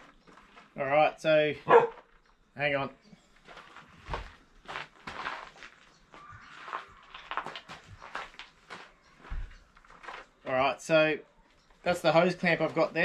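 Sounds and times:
footsteps on gravel: 0:00.0 - 0:00.8, 0:01.7 - 0:02.3, 0:03.3 - 0:10.5, 0:11.5 - 0:13.0.

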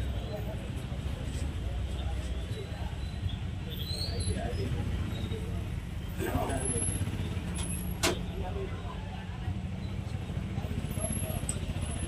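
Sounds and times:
low street traffic rumble: 0:00.0 - 0:12.0
murmur of voices: 0:00.0 - 0:12.0.

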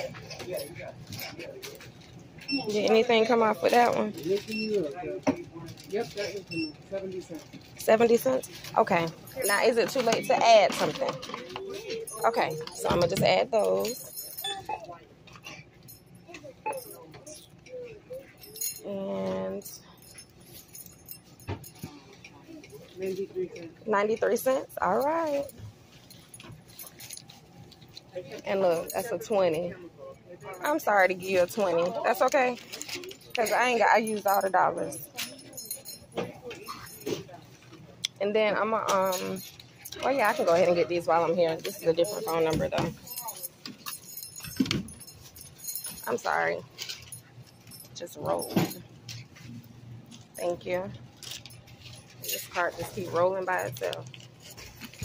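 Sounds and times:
items and packaging clinking: 0:00.0 - 0:29.8, 0:30.4 - 0:55.0
faint voices: 0:00.0 - 0:55.0.

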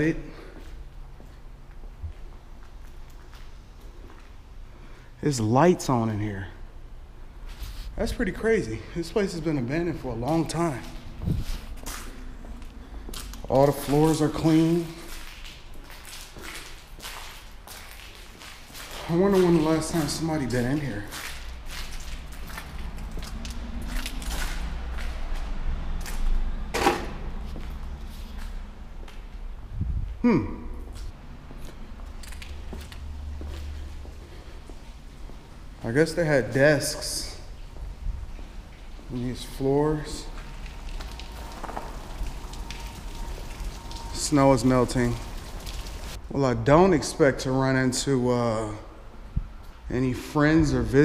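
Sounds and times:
water dripping: 0:08.0 - 0:26.4, 0:30.8 - 0:51.0
footsteps scuffing: 0:10.2 - 0:29.4, 0:30.9 - 0:42.1
running water hiss: 0:36.0 - 0:46.2.

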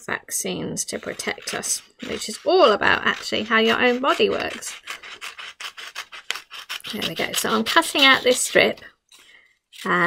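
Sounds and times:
scissors snipping paper: 0:00.9 - 0:10.0.

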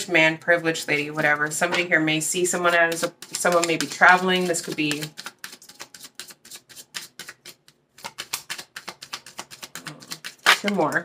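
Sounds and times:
cards being shuffled: 0:02.6 - 0:11.0.

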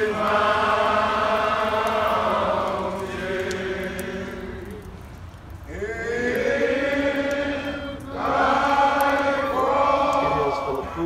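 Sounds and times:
voices singing long notes: 0:00.0 - 0:11.0.

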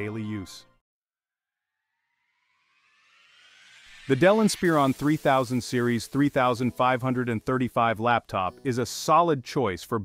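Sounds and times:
rising riser sound effect: 0:01.7 - 0:07.9.

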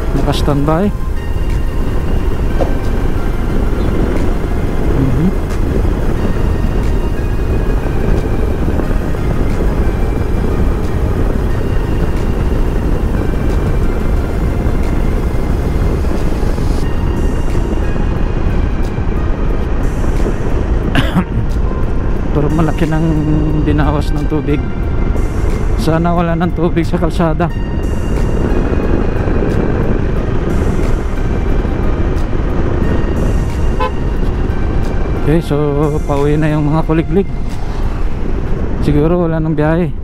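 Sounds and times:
faint background music: 0:00.0 - 0:40.0
road noise: 0:00.0 - 0:40.0
wind rush: 0:00.0 - 0:40.0.

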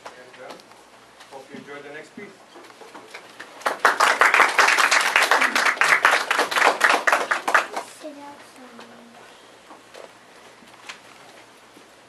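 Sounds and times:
audience applauding: 0:03.3 - 0:08.0.

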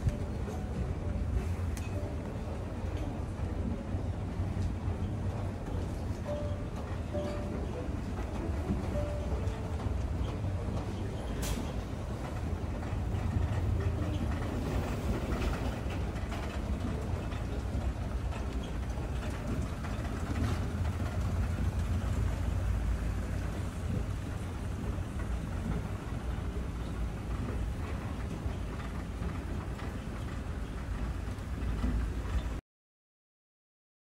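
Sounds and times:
escalator machinery rumble: 0:00.0 - 0:32.6.

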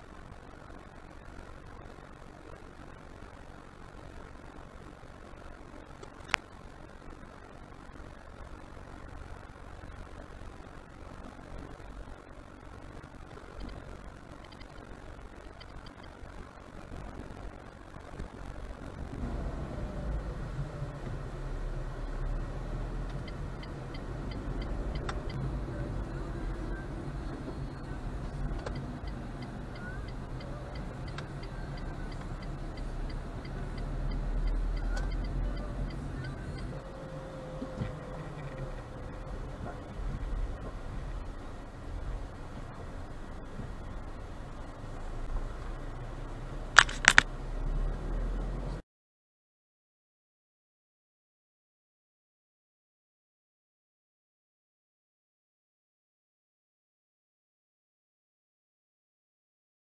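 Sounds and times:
engine and road rumble: 0:00.0 - 0:48.8.

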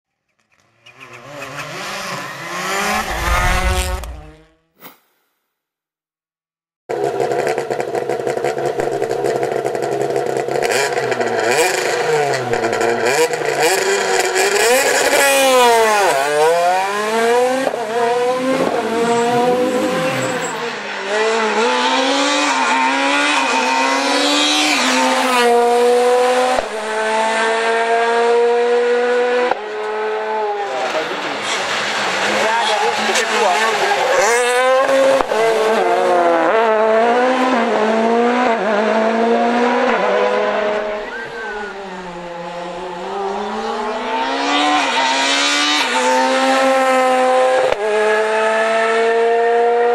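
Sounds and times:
rally car engine revving: 0:00.9 - 0:04.6, 0:06.9 - 0:49.9.

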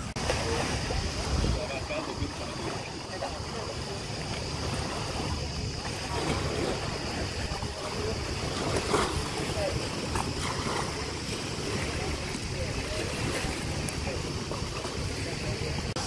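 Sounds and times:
small waves washing on sand: 0:00.0 - 0:16.0
wind buffeting microphone: 0:00.0 - 0:16.0.

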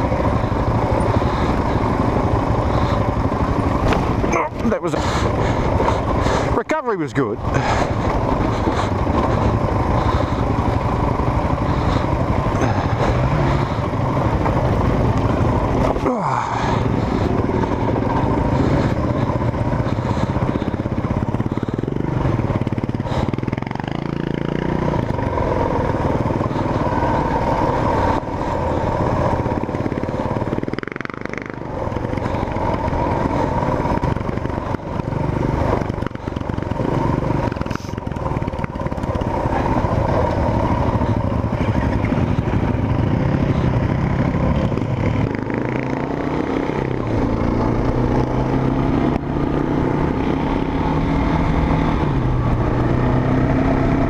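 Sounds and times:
clatter of rough dirt track: 0:00.0 - 0:54.0
motorcycle engine running: 0:00.0 - 0:54.0.

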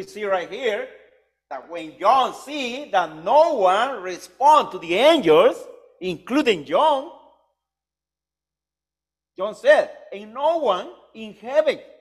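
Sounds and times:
man speaking: 0:00.0 - 0:07.3, 0:09.4 - 0:11.8.

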